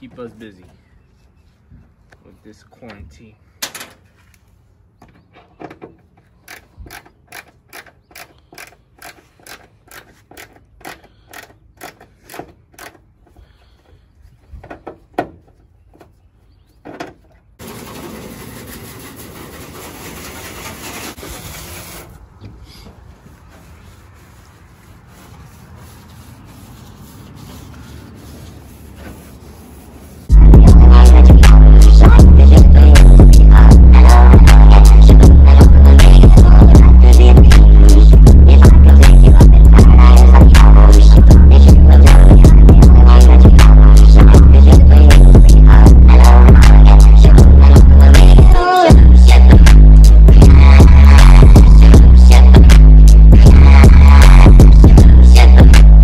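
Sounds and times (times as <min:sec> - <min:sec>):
hose nozzle spraying water: 0:17.6 - 0:22.2
scrub brush scrubbing: 0:17.6 - 0:22.2, 0:23.0 - 0:30.3
loud music with heavy beat: 0:30.3 - 0:56.0.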